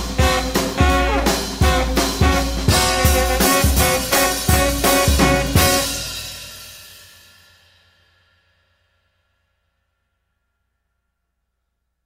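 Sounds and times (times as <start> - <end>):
jazz band with saxophone and trombone: 0.0 - 6.7.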